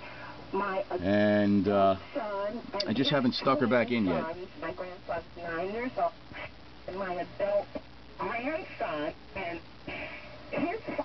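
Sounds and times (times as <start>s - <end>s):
faint low hum: 0.0s - 11.0s
radio voice from loudspeaker: 2.9s - 4.6s.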